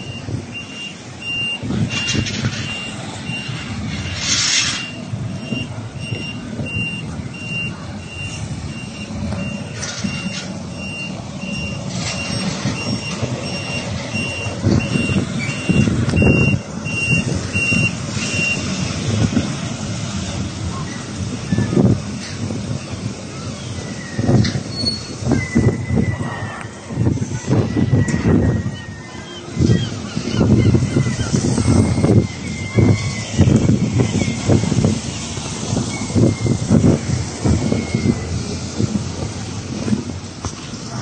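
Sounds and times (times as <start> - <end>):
reversing alarm beeping: 0.0 - 18.8
diesel engine running: 0.0 - 41.0.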